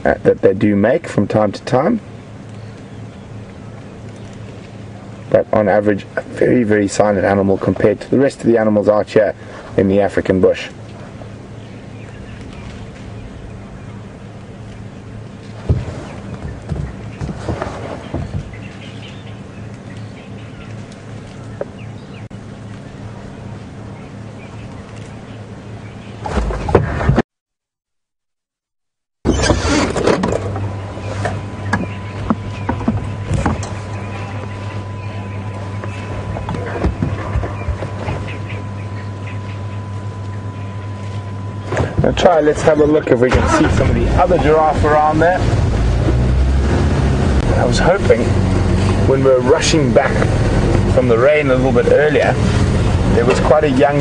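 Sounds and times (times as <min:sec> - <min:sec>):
steady low hum: 0:00.0 - 0:27.2, 0:29.3 - 0:54.0
faint rustles and knocks: 0:15.4 - 0:19.2.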